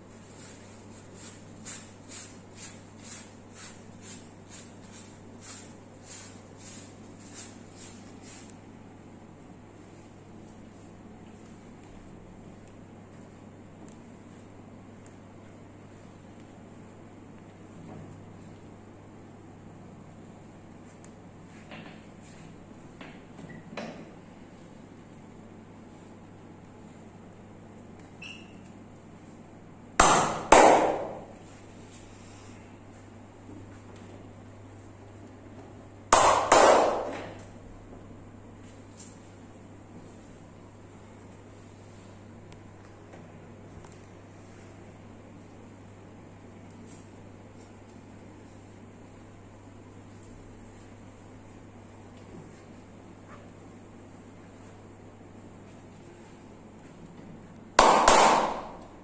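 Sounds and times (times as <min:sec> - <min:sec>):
loud sharp cracks: 0:30.0 - 0:31.2, 0:36.2 - 0:37.3, 0:57.8 - 0:58.9
hand slaps on bare back: 0:57.8 - 0:58.8.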